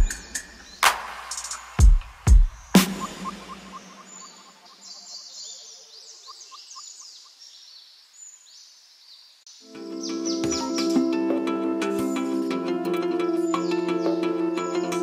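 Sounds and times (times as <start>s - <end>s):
birds chirping: 0.0s - 15.0s
background music with plucked notes: 9.6s - 15.0s.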